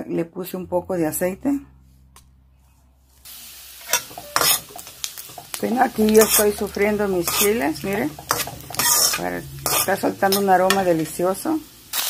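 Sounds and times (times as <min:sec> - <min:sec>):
chiles sizzling in hot oil: 0:03.2 - 0:12.0
metal spoon clinking on pan: 0:03.9 - 0:11.0.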